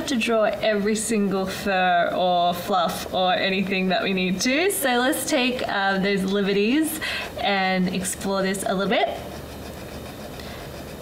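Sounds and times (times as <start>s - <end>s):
pen rubbing on paper: 8.0s - 11.0s.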